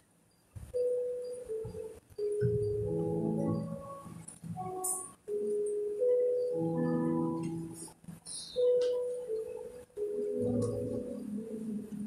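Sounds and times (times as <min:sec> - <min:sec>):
soft keyboard music: 0:00.0 - 0:12.0.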